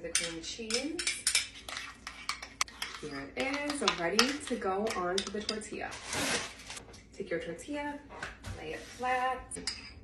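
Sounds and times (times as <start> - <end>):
metal spoon clinking ceramic bowls: 0.0 - 5.7, 9.6 - 10.0.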